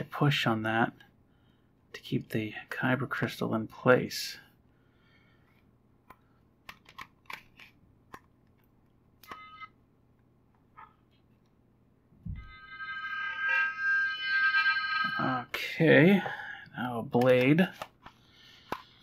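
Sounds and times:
steady electronic tone: 0:12.2 - 0:15.6
electronic beep: 0:12.4 - 0:15.5.

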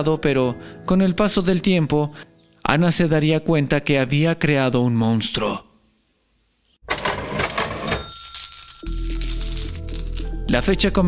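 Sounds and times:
cash register bell ding: 0:06.9 - 0:10.2
coins rattling: 0:06.9 - 0:10.5.

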